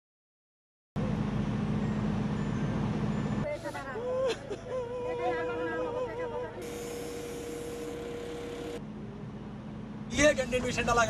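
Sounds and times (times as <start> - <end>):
heavy crane engines droning: 1.0 - 11.0
man crying and wailing: 3.5 - 6.6.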